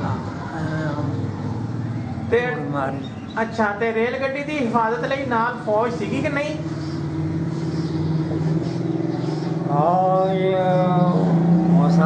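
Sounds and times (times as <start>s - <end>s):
low engine hum: 4.5s - 12.0s.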